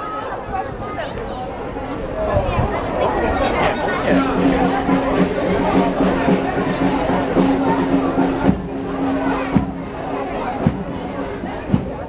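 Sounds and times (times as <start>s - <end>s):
crowd chatter: 0.0s - 12.0s
marching band music: 3.8s - 12.0s
bass drum beating: 4.1s - 12.0s.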